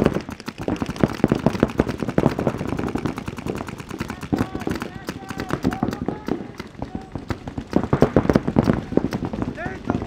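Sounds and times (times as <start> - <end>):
paintball markers firing: 0.0 - 10.0.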